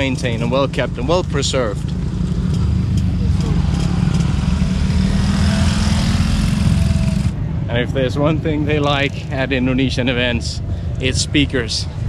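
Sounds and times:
small motorcycle engine: 2.4s - 7.4s.

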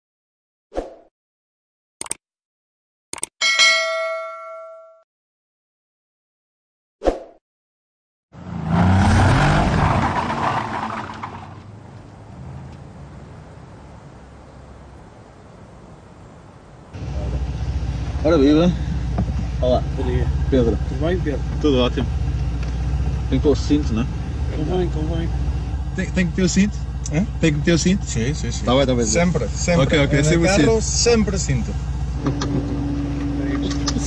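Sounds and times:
bright bell ding: 3.4s - 5.0s
car engine rumble inside cabin: 17.0s - 34.0s.

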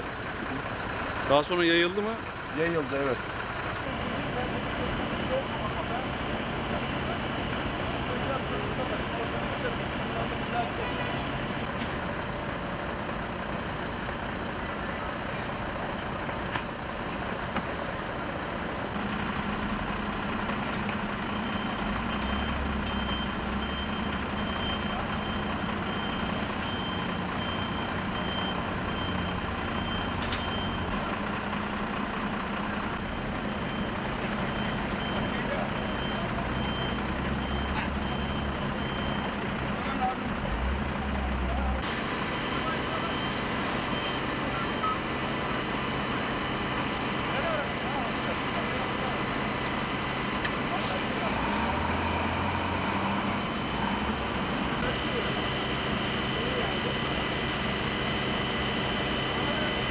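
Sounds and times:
diesel engine running: 0.0s - 59.9s.

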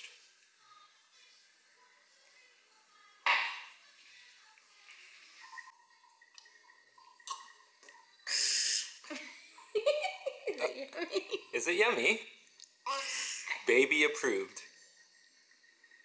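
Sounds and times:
drinking water from a glass: 5.5s - 9.7s.

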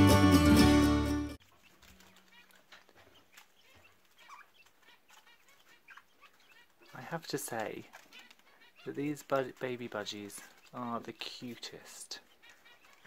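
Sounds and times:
music: 0.0s - 1.4s
budgerigar chirps and chatter: 1.6s - 13.0s.

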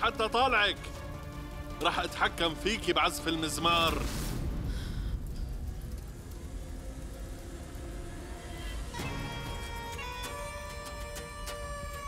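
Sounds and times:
low steady rumble: 0.8s - 10.1s.

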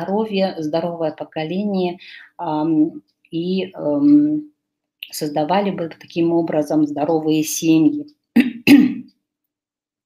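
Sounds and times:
woman clearing her throat: 8.4s - 9.1s.

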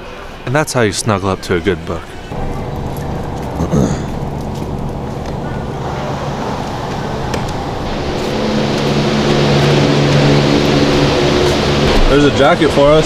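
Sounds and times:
freezer fans rushing and humming: 2.3s - 13.0s.

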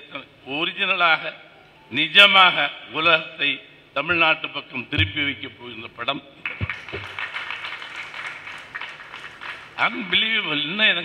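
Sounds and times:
audience applauding: 6.4s - 10.3s.

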